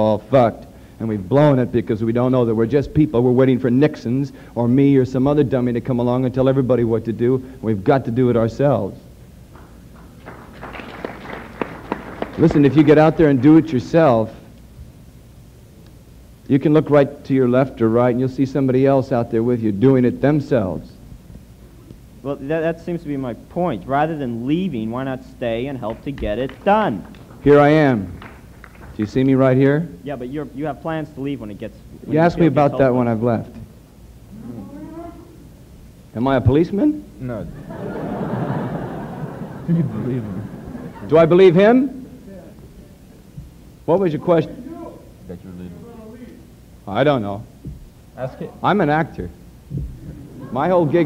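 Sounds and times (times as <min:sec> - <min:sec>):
audience rustle and murmur: 0:49.6 - 0:51.0.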